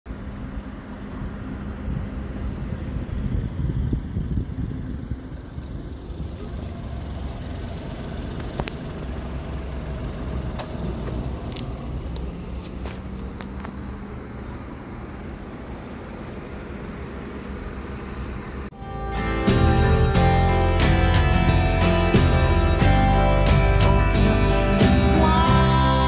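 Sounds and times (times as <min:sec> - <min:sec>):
car engine idling: 0:00.1 - 0:26.0.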